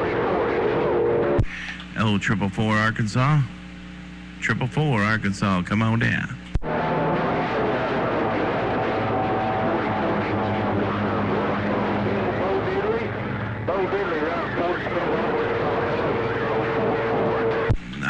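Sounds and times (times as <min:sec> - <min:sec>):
radio static hiss: 0:00.0 - 0:18.0.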